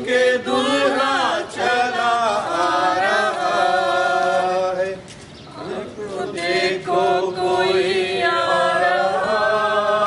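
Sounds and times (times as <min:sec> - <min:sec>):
congregation singing a hymn: 0:00.0 - 0:05.0, 0:05.6 - 0:10.0.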